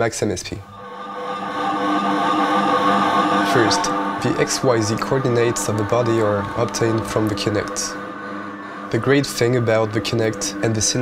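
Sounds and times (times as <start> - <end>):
synthesized electronic drone: 0.6 - 11.0.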